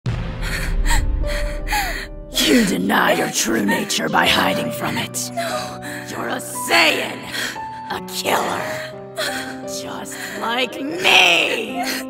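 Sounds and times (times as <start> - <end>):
low music drone: 0.1 - 11.0.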